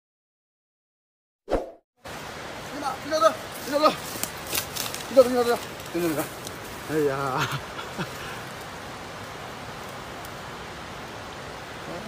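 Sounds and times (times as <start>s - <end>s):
outdoor background hiss: 2.0s - 12.0s.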